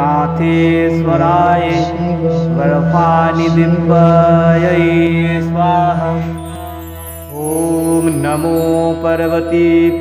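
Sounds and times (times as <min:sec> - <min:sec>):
person chanting: 0:00.0 - 0:10.0.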